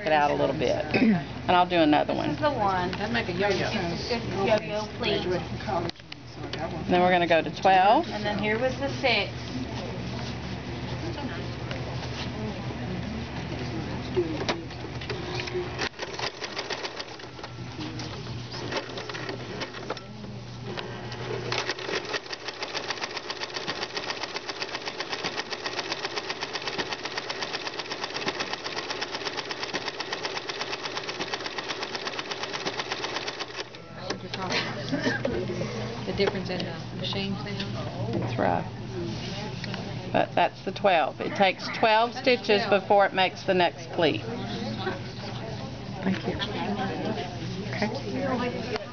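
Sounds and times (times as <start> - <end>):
electric sewing machine stitching: 15.8 - 17.2, 21.2 - 33.8.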